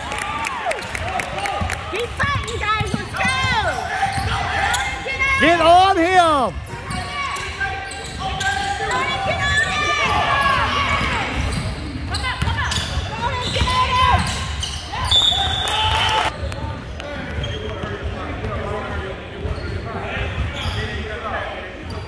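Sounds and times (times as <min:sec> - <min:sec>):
shoe squeals: 0:02.2 - 0:05.5, 0:06.8 - 0:16.6, 0:17.3 - 0:18.1, 0:19.4 - 0:22.0.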